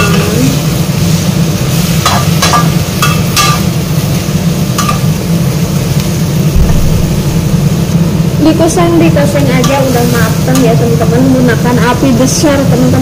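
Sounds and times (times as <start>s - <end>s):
steady low rumble: 6.4s - 10.4s.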